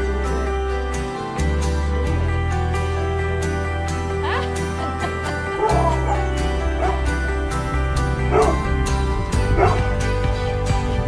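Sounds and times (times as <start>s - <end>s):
background music with steady beat: 0.0s - 11.0s
dog yipping: 5.6s - 7.1s, 8.3s - 8.6s, 9.6s - 9.9s.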